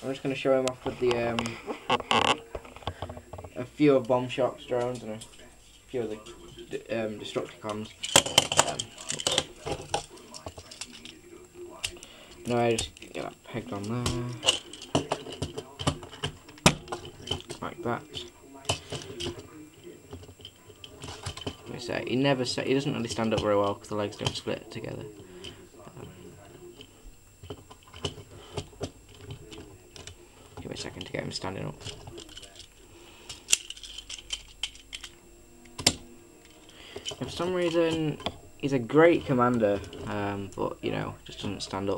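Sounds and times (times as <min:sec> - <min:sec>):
plastic toy parts clicking: 0:07.6 - 0:11.2, 0:27.4 - 0:38.3.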